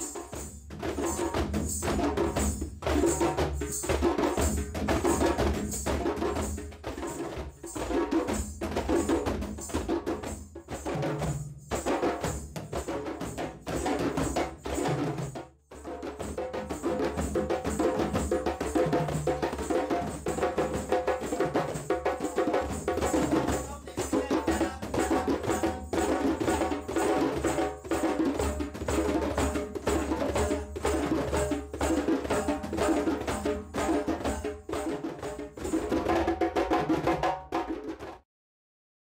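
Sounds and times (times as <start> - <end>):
djembes played with hands: 0.0 - 38.2.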